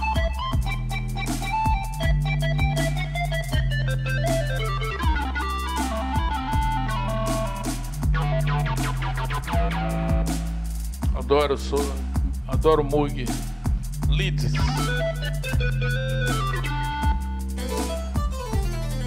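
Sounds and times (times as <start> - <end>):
synthesizer runs over bass notes: 0.0 - 11.2, 12.2 - 19.0
drums: 0.0 - 19.0.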